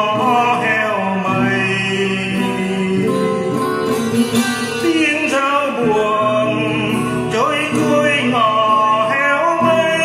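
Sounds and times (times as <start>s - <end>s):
acoustic guitar accompaniment: 0.0s - 10.0s
man singing slow melody: 0.0s - 10.0s.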